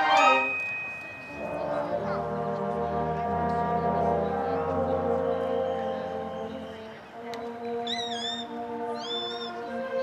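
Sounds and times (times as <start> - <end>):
concert band sustained chords: 0.0 - 10.0.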